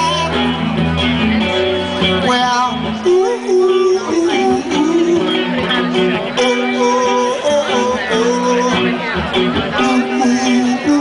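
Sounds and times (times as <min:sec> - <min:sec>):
man singing: 0:00.0 - 0:01.0, 0:02.0 - 0:11.0
electric guitar strummed: 0:00.0 - 0:11.0.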